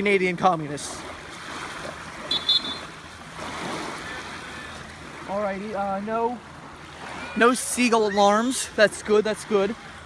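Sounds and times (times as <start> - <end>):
waves washing on shore: 0.0 - 10.0.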